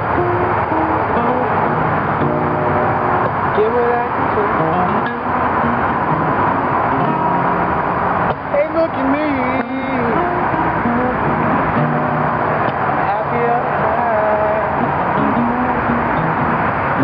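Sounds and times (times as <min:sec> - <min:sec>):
acoustic blues guitar: 0:00.0 - 0:17.0
highway traffic noise: 0:00.0 - 0:17.0
man singing: 0:03.5 - 0:05.3, 0:08.4 - 0:11.5, 0:13.0 - 0:16.4.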